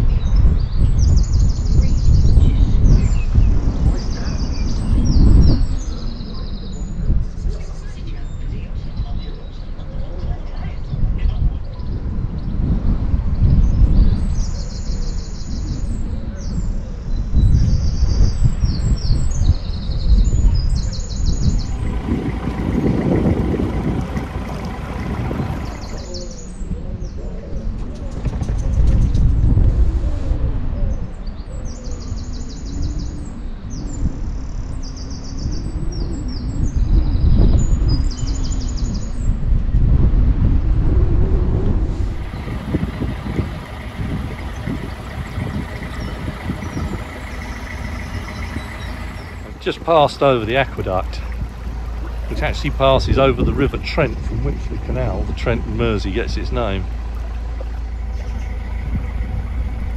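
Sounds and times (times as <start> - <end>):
songbirds trilling: 13.4 - 27.2, 42.0 - 59.9
loud steady low rumble: 17.2 - 26.6, 40.0 - 59.9.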